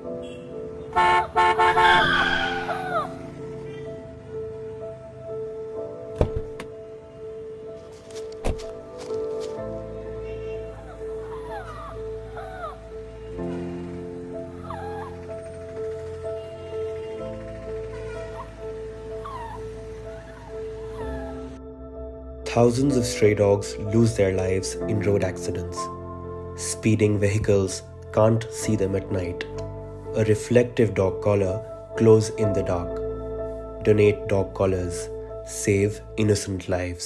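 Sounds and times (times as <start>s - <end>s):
soft background music: 0.0s - 37.0s
car horn honking: 0.2s - 2.8s, 10.0s - 11.1s
puppy whimpering: 10.8s - 12.8s, 14.6s - 15.2s, 19.2s - 21.5s.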